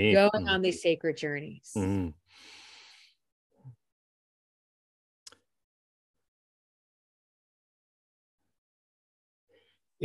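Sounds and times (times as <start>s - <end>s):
person breathing: 1.9s - 3.2s.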